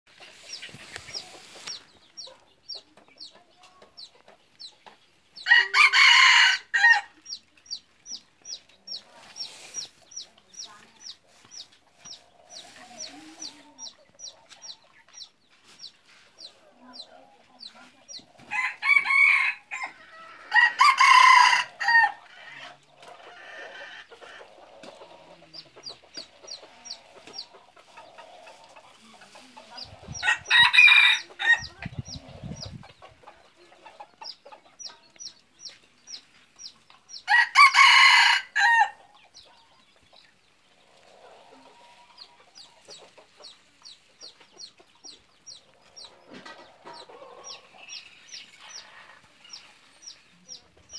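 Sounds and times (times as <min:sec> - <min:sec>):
roosters crowing: 0:05.4 - 0:07.2, 0:18.4 - 0:25.4, 0:29.9 - 0:32.2, 0:37.2 - 0:39.1.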